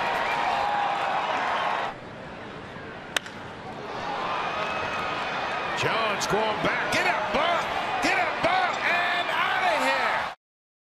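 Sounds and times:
stadium crowd noise: 0.0 - 10.4
announcer shouting excitedly: 5.8 - 10.3.

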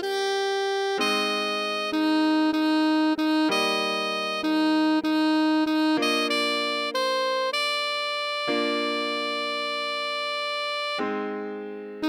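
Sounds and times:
saxophone long note: 1.0 - 11.0.

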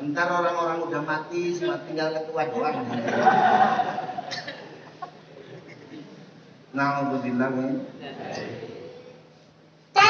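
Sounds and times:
group of people laughing: 2.7 - 5.9.

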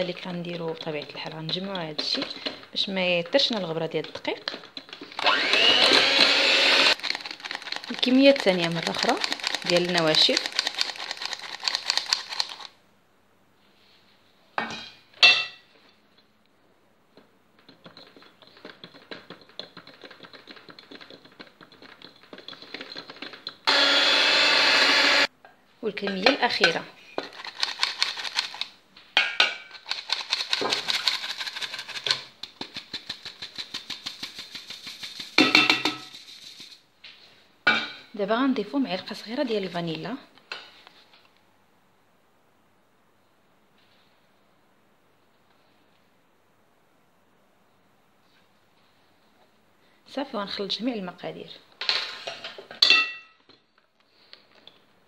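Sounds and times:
electric mixer motor running: 5.2 - 7.0, 23.7 - 25.3
mixer beaters ticking and scraping: 5.4 - 10.9.

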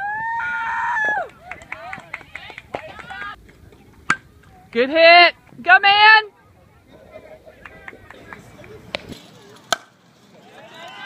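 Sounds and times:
faint distant voices: 1.4 - 11.0
bat striking baseball: 4.0 - 4.3, 8.9 - 10.0.

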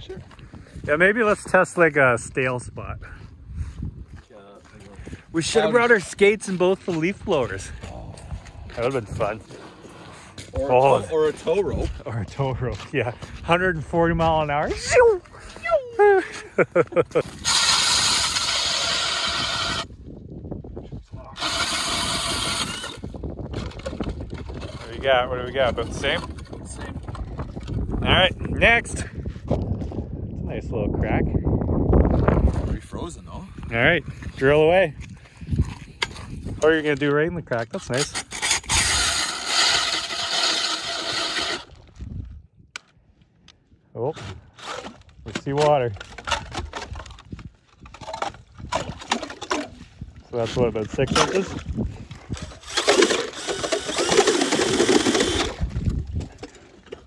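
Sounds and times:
drill auger grinding through ice: 17.2 - 20.0, 21.3 - 27.8, 37.8 - 42.0, 44.2 - 47.1, 50.4 - 57.0
cordless drill motor whine: 17.4 - 19.9, 21.4 - 23.2, 38.4 - 41.8, 52.6 - 55.6.

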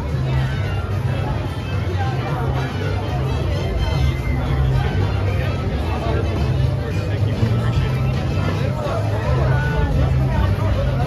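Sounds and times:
background music with bass: 0.0 - 11.0
crowd chatter: 0.0 - 11.0.

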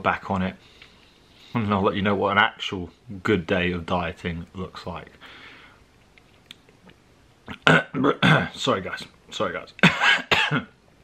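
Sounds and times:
man clearing his throat: 7.5 - 8.6, 9.8 - 10.8.

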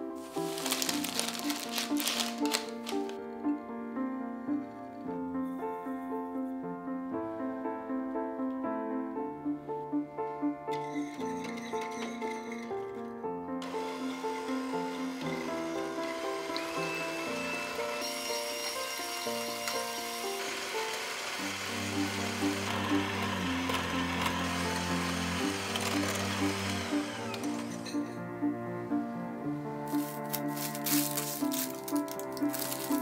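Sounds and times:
background music: 0.0 - 33.0
electric hand mixer whirring: 0.3 - 3.2, 13.6 - 28.2, 29.9 - 33.0.

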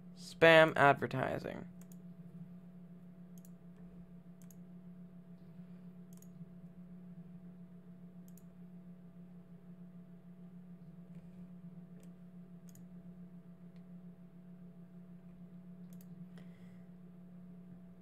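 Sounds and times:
low hum: 0.0 - 18.0
computer clicks: 1.8 - 2.0, 3.4 - 3.6, 4.4 - 4.6, 6.1 - 6.4, 8.2 - 8.5, 12.0 - 12.9, 15.9 - 16.2.

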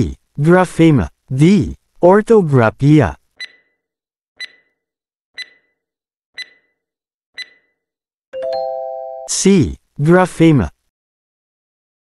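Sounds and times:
short high timer ticks: 4.4 - 4.7, 5.4 - 5.8, 6.4 - 6.8, 7.4 - 7.7
ringing chime: 8.4 - 9.3.

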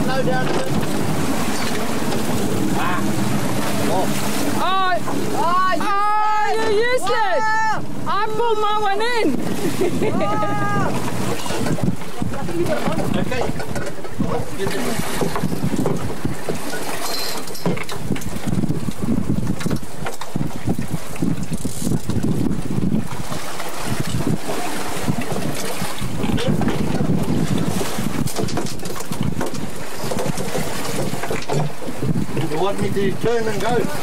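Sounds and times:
boat moving through choppy sea: 0.0 - 34.0
wind buffeting microphone: 0.0 - 34.0.

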